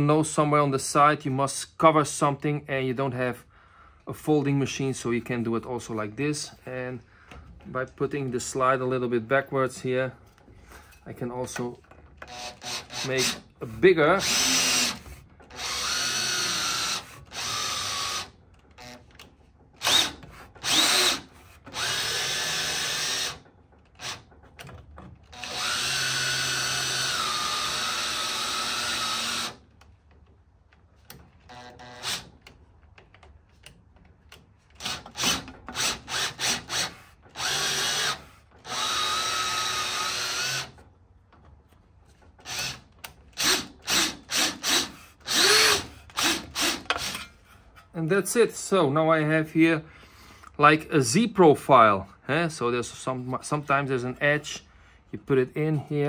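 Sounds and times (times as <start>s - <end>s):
power tool motor whining: 14.2s - 19.2s, 19.8s - 23.4s, 25.3s - 29.6s, 34.8s - 40.8s, 42.4s - 47.3s.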